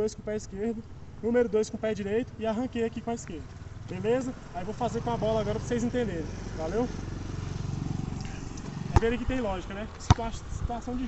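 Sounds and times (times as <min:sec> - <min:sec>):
ball bouncing on asphalt: 0:08.6 - 0:10.4.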